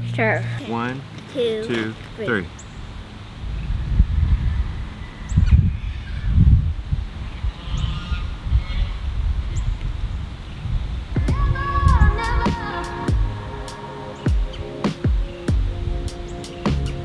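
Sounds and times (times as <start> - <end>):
wind buffeting microphone: 2.3 - 13.4
music: 11.2 - 17.0.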